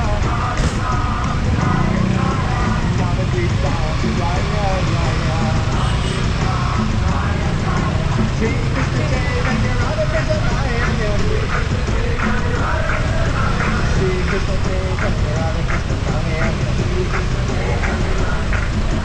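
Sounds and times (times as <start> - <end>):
motorcycles: 0.0 - 19.0
traffic rumble: 0.0 - 19.0
voices: 0.0 - 19.0.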